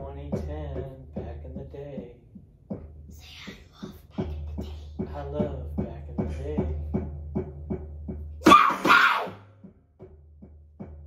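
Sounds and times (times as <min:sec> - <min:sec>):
beatboxed rhythm: 0:00.0 - 0:09.4.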